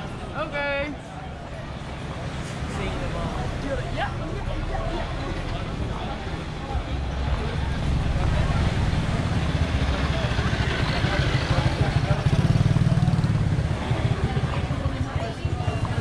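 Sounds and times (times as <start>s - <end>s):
people's voices: 0.0s - 16.0s.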